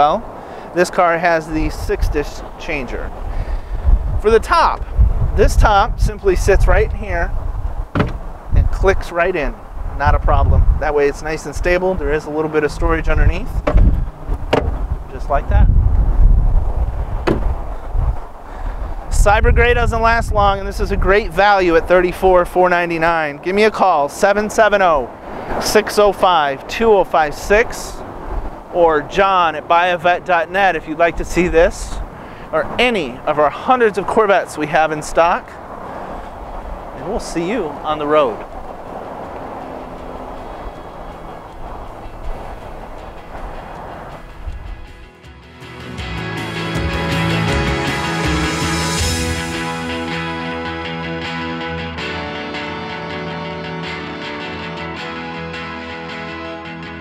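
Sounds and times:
wind rumble on microphone: 0:01.2 - 0:23.9, 0:24.5 - 0:45.1
glass hatch shutting thump: 0:07.9 - 0:08.3, 0:13.6 - 0:14.9, 0:17.2 - 0:17.6
music: 0:40.5 - 0:57.0.

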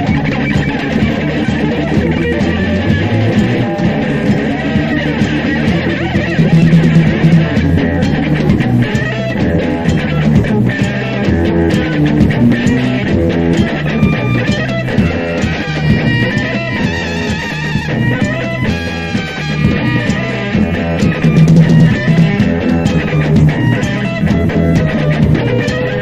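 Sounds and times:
electric guitar: 0:00.0 - 0:26.0
live post-punk band: 0:00.0 - 0:26.0.

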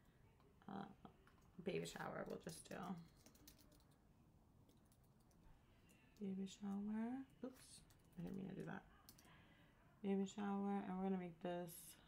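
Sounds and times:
faint keyboard typing: 0:01.1 - 0:04.0, 0:04.6 - 0:06.9, 0:07.8 - 0:09.4.

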